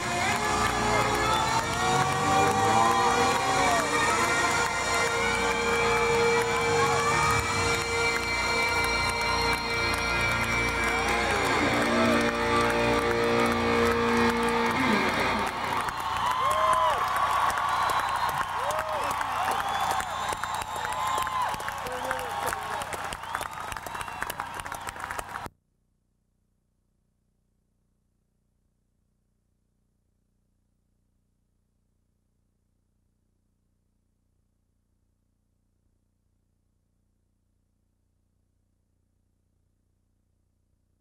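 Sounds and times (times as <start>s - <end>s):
live rock band playing: 0.0s - 16.0s
crowd cheering and whooping: 0.0s - 25.5s.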